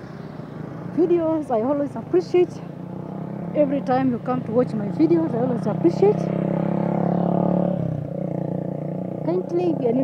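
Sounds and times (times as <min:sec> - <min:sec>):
vehicle engine passing by: 0:00.0 - 0:10.0.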